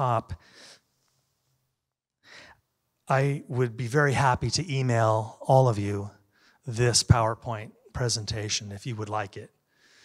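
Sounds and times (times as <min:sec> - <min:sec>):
faint breath into microphone: 0:00.4 - 0:01.2, 0:09.7 - 0:10.0.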